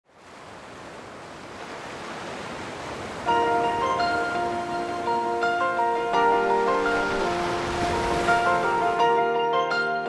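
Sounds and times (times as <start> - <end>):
music with sustained chords: 3.3 - 10.0.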